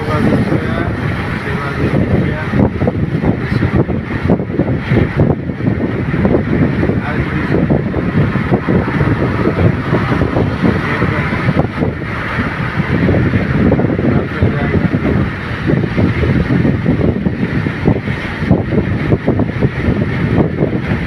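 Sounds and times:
tyre and wind rumble: 0.0 - 21.0
wind buffeting microphone: 0.0 - 21.0.

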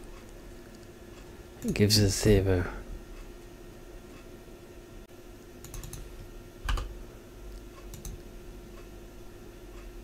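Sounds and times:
computer keyboard keystrokes: 5.6 - 6.9, 7.8 - 8.3.

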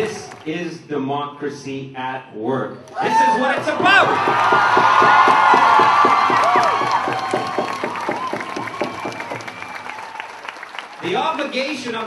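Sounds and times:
shouts and whoops: 2.9 - 10.6
crowd applauding and cheering: 2.9 - 12.0.

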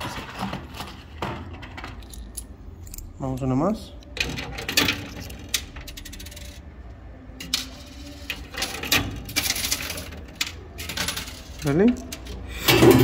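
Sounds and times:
coins clinking in arcade machine: 4.2 - 6.8, 7.4 - 13.0.

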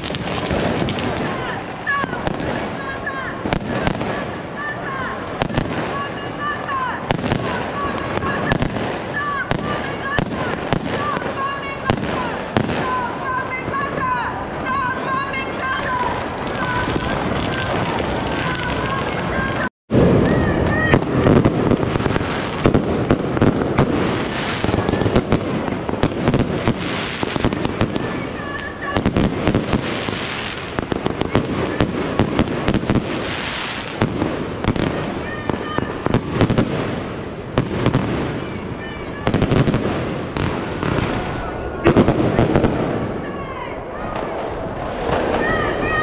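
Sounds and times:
firework bangs and crackles: 0.0 - 46.0
rockets bursting overhead: 0.0 - 46.0.

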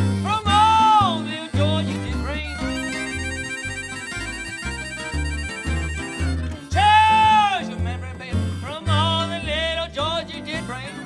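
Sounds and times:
harmonica trilling a chord: 0.0 - 9.4
guitars: 0.0 - 11.0
plucked bass notes: 0.0 - 11.0.

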